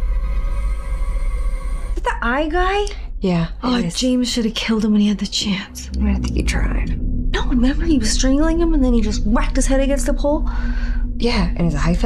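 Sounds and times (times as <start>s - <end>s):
deep low rumble: 1.9s - 12.0s
sustained ominous tones: 2.4s - 12.0s.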